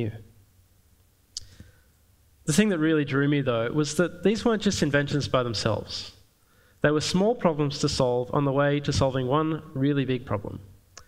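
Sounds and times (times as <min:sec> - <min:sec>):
man speaking: 0:00.0 - 0:00.2, 0:02.5 - 0:06.2, 0:06.8 - 0:10.7.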